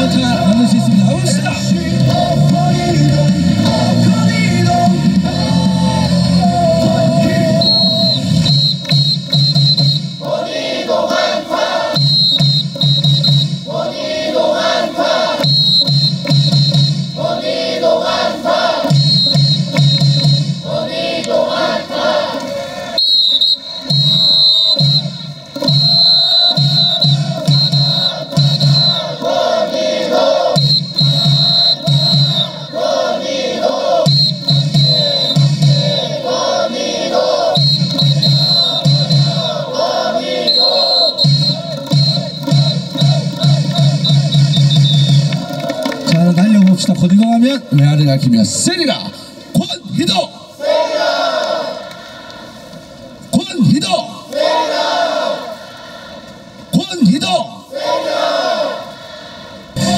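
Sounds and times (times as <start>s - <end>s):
cheer song over loudspeakers: 0.0s - 23.1s, 23.8s - 48.9s, 56.8s - 59.9s
crowd singing along: 0.0s - 46.1s, 49.4s - 53.2s, 54.0s - 56.7s, 57.4s - 59.9s.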